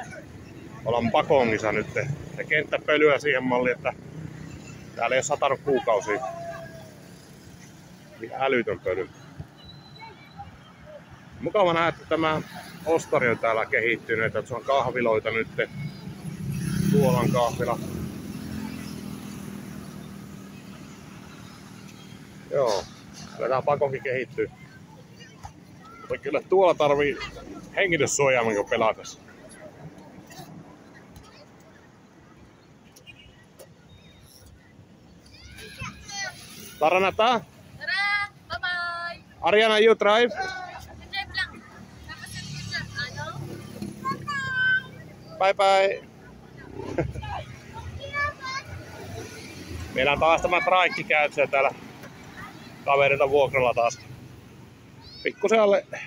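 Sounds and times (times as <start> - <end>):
faint distant sounds: 0.0 - 56.0
low rumble of traffic: 0.0 - 56.0
man speaking: 52.8 - 54.0.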